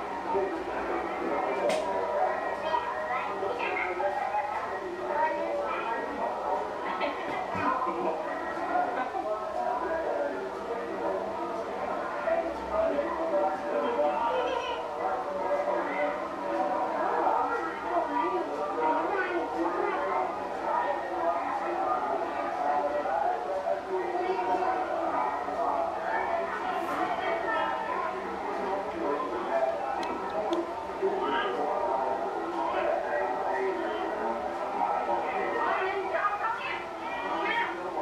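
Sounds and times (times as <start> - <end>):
people talking: 0.0 - 38.0
overlapping voices: 6.1 - 38.0.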